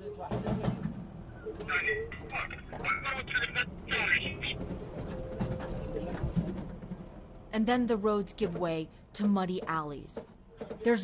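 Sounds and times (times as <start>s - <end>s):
vehicle convoy noise: 0.3s - 8.8s
voices speaking: 1.4s - 4.8s.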